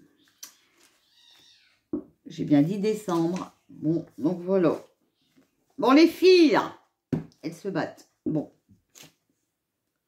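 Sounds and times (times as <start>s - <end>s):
cat crying: 1.0s - 1.8s.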